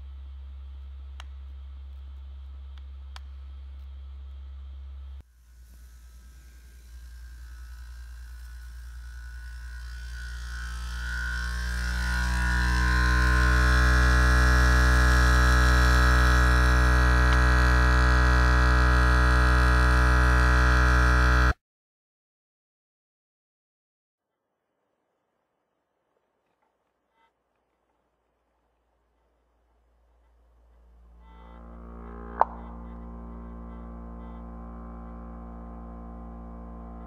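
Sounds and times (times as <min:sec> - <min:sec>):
stirling engine buzzing: 0:06.0 - 0:21.6, 0:30.9 - 0:37.0.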